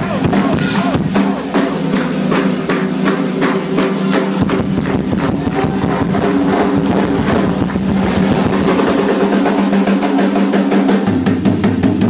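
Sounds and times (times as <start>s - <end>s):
distorted electric guitar: 0.0s - 12.0s
rapid drumming: 0.0s - 12.0s.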